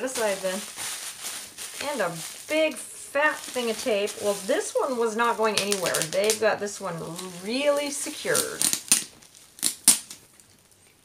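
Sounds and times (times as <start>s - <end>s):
packing tape being cut: 7.1s - 10.2s.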